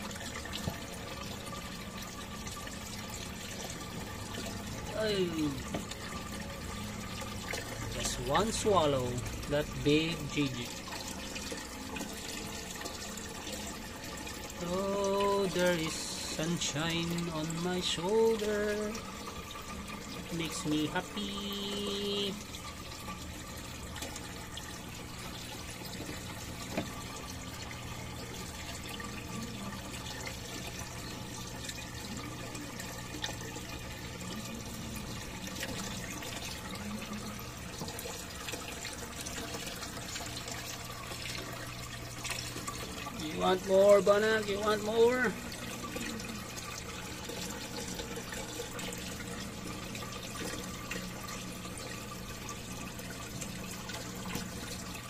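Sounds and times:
water running in tank: 0:00.0 - 0:55.0.

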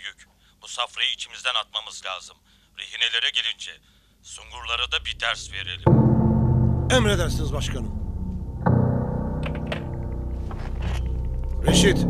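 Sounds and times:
low sustained drone: 0:04.7 - 0:11.8.

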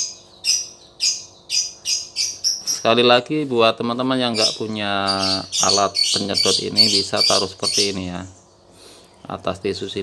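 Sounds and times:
bird chirping: 0:00.0 - 0:03.2, 0:04.0 - 0:10.0.

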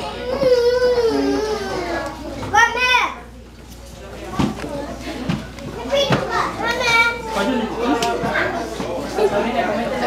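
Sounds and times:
high child's voice: 0:00.0 - 0:03.3, 0:05.8 - 0:07.4
children chattering and calling: 0:00.0 - 0:10.0.

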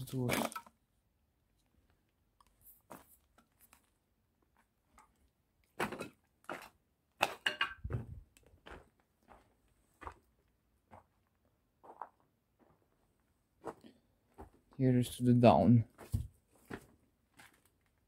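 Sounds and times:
footsteps crunching on rubble: 0:05.8 - 0:12.9, 0:13.6 - 0:14.7, 0:15.9 - 0:18.0.

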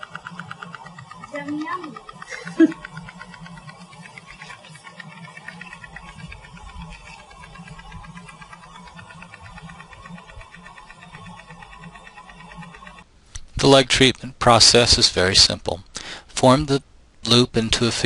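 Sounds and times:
rapid pulsing electric buzz: 0:00.0 - 0:15.6.

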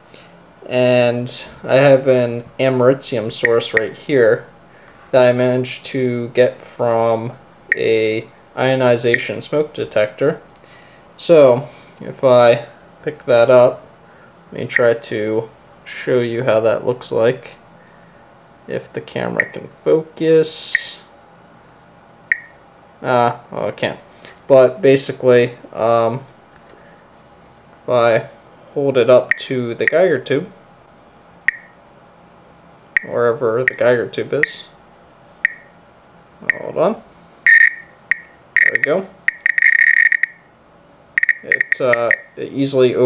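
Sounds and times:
geiger counter click: 0:03.4 - 0:04.0, 0:07.7 - 0:07.9, 0:19.4 - 0:19.6, 0:22.3 - 0:22.6, 0:29.3 - 0:30.0, 0:31.5 - 0:31.8, 0:33.0 - 0:34.6, 0:35.4 - 0:35.7, 0:36.5 - 0:36.7, 0:37.5 - 0:40.4, 0:41.2 - 0:42.3.

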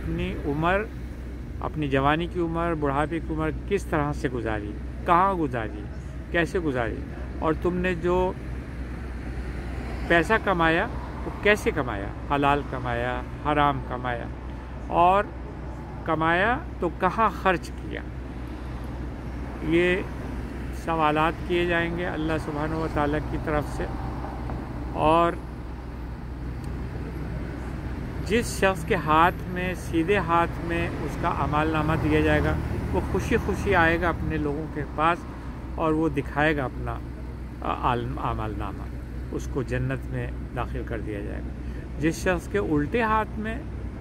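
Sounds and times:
engine hum: 0:00.0 - 0:44.0
street traffic rumble: 0:00.0 - 0:44.0.

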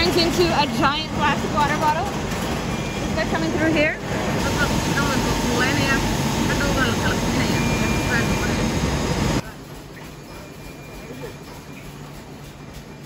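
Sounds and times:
machinery running: 0:00.0 - 0:13.0.

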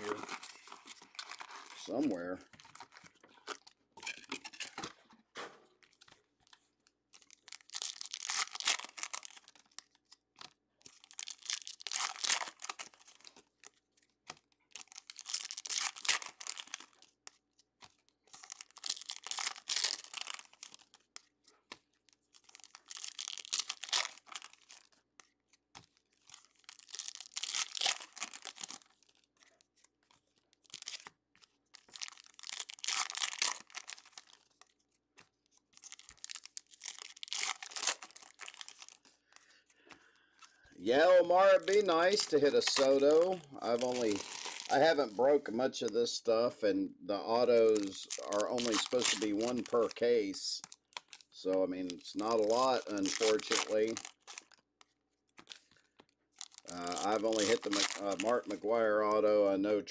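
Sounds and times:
foil wrappers crinkling and tearing: 0:00.0 - 0:46.2, 0:47.3 - 0:59.2.

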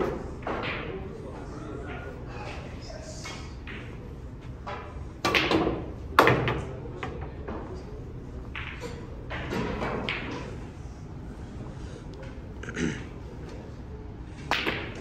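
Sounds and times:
snooker balls colliding: 0:03.6 - 0:07.7, 0:08.4 - 0:10.7, 0:14.4 - 0:15.0
cue knocking ball: 0:08.5 - 0:10.6, 0:14.5 - 0:15.0.

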